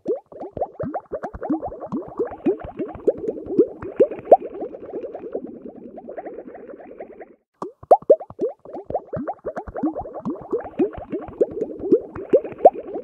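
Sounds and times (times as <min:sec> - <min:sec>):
liquid plopping and bubbling: 0:00.0 - 0:13.0.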